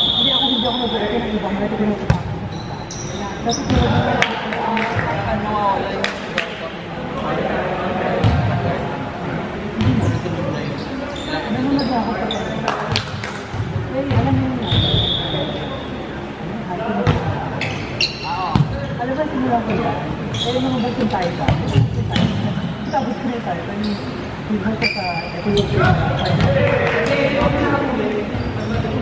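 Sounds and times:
shoes squeaking on wooden court: 2.1s - 4.1s, 9.8s - 15.1s, 17.2s - 19.0s, 19.7s - 26.6s, 27.4s - 29.0s.

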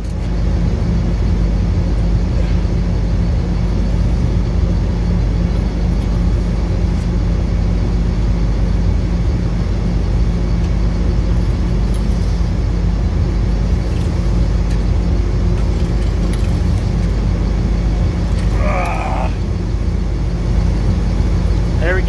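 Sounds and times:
machinery drone: 0.0s - 22.0s.

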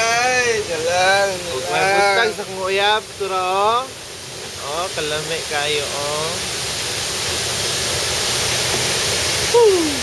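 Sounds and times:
waterfall rushing: 0.0s - 10.0s.

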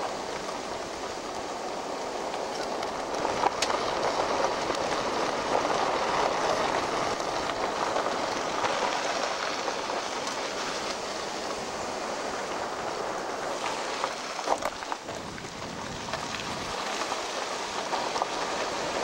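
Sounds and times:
tyres rushing on gravel: 0.0s - 19.0s.

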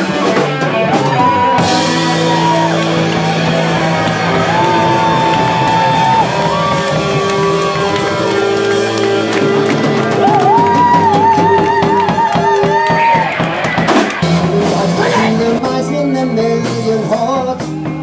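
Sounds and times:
sustained electric guitar lead notes: 0.0s - 12.1s
bass and drums: 0.0s - 18.0s.

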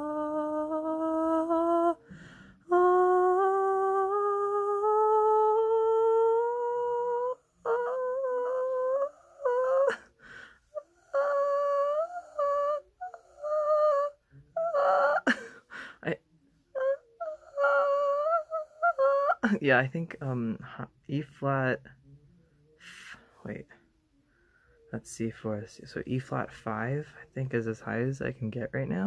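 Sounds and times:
person singing rising notes: 0.0s - 2.1s, 2.7s - 10.1s, 10.7s - 16.2s, 16.8s - 19.6s
breathy sounds: 2.0s - 2.8s, 6.5s - 16.2s, 22.8s - 24.9s.

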